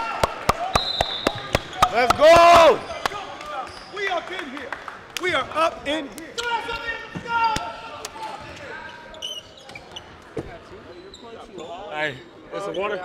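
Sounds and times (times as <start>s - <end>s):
people talking in a large hall: 0.0s - 13.0s.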